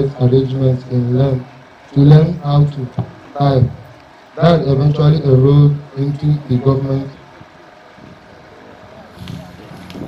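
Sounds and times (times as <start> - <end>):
man speaking: 0.0 - 7.3
faint background noise: 0.0 - 10.0.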